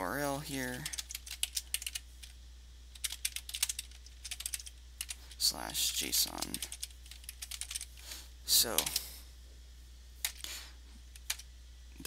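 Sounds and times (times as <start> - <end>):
low hum: 0.0 - 12.0
keyboard keystrokes: 3.0 - 5.2, 6.4 - 7.9.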